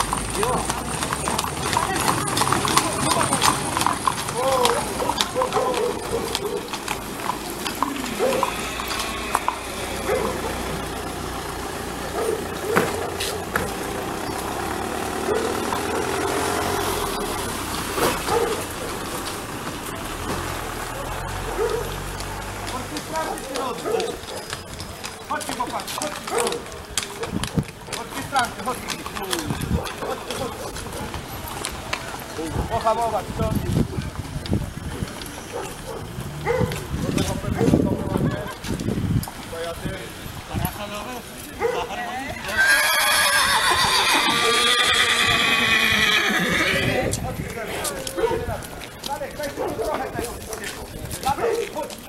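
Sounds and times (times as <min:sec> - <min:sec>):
people talking: 0:00.0 - 0:14.2, 0:22.5 - 0:35.8, 0:36.7 - 0:42.7, 0:44.1 - 0:52.0
hooves clip-clopping on wet road: 0:00.0 - 0:52.0
horse whinnying loudly: 0:02.6 - 0:11.1, 0:42.4 - 0:47.2.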